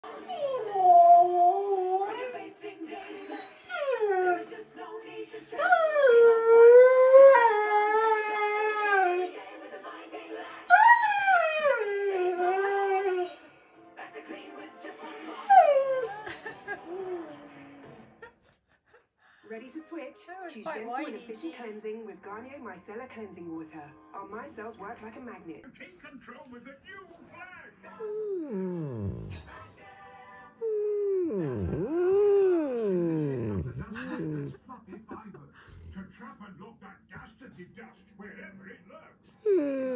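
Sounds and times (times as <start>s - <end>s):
dog howling: 0.0s - 2.2s, 5.6s - 9.4s, 10.7s - 13.4s, 15.0s - 16.3s, 28.0s - 29.5s, 30.6s - 34.2s
dog humming: 28.0s - 29.7s, 30.6s - 34.5s.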